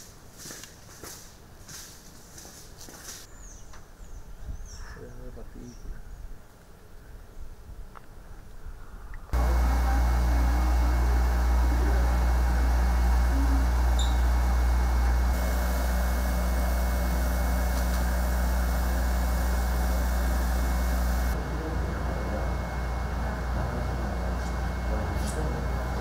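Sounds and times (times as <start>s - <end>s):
laser cutter humming: 9.4s - 26.0s.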